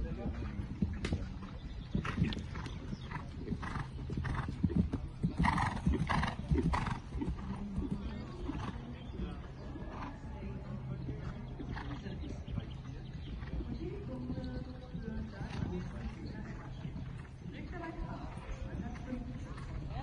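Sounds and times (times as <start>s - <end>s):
horse hoofbeats on grass: 0.0s - 20.0s.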